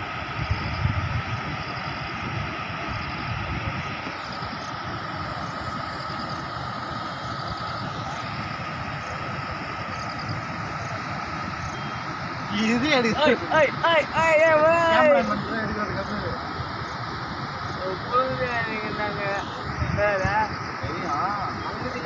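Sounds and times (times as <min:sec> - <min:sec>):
water rushing over a weir: 0:00.0 - 0:22.0.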